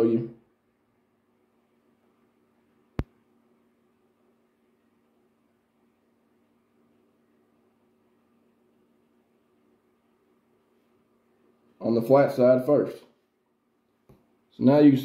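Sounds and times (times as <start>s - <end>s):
faint room hum: 0.0s - 15.0s.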